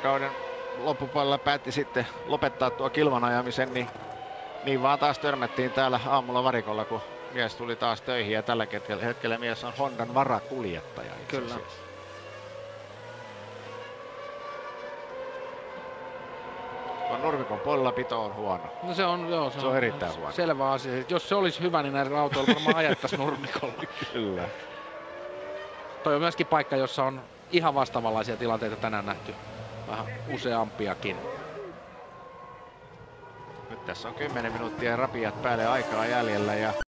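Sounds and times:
distant racing car engine whine: 0.0s - 36.9s.

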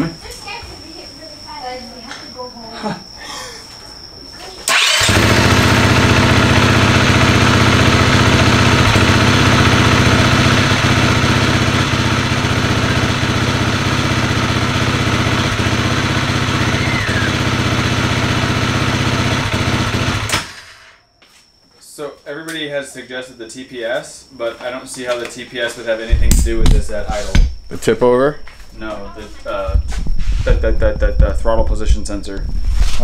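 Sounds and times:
motorcycle engine starting and idling: 4.6s - 21.0s.

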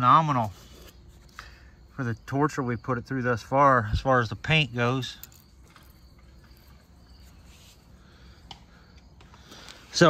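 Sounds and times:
faint insect chirping: 0.0s - 10.0s.

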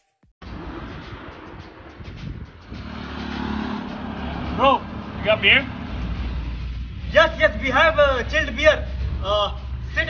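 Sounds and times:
car engine driving up: 0.4s - 10.0s.

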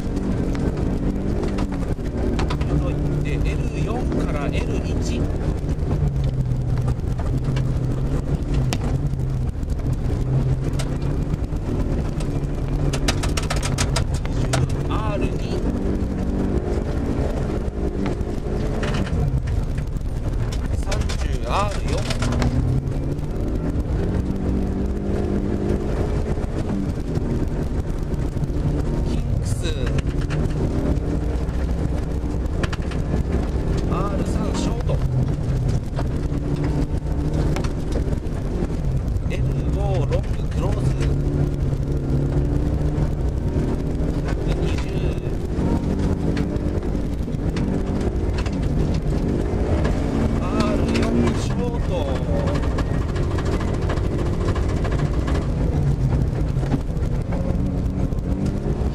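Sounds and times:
rally car engine revving: 0.0s - 58.9s
road and snow noise: 0.0s - 58.9s.

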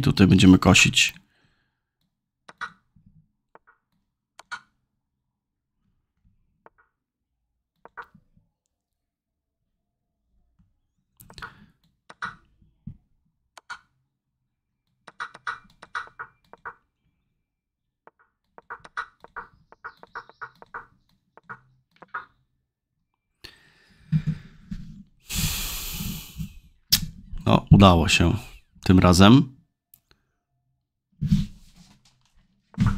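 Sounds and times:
mouse clicking: 7.8s - 8.1s, 15.1s - 16.8s, 18.1s - 22.3s
breathy noise rush: 25.2s - 26.7s.

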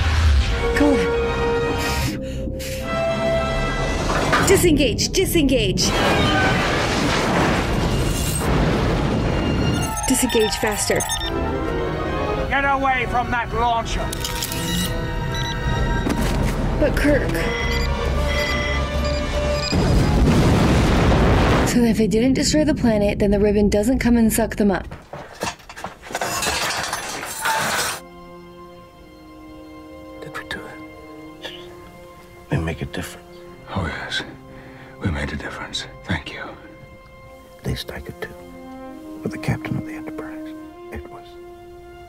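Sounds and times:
metal bridge collapsing: 5.9s - 10.0s, 25.3s - 28.0s
rumbling crash of falling rock: 6.0s - 9.8s, 19.7s - 21.7s
soft sustained music chords: 28.0s - 42.0s.

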